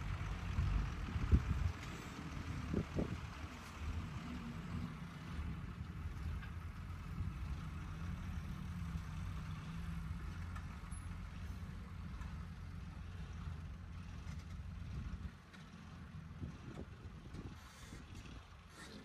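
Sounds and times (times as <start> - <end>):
excavator working: 0.0 - 19.0
tipper truck driving: 0.0 - 19.0.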